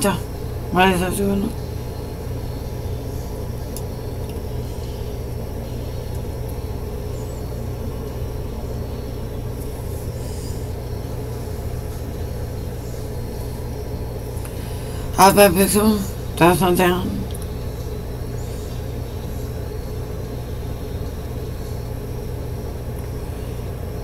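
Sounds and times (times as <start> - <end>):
low rumble and hum: 0.0 - 24.0.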